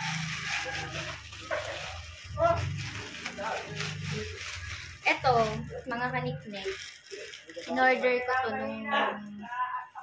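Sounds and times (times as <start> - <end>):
plastic bag crinkling and tearing: 0.0 - 8.8.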